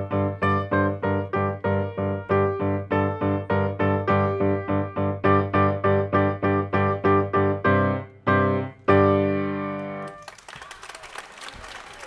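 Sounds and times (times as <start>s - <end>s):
grand piano chords: 0.0s - 10.2s
audience applause: 10.0s - 12.0s.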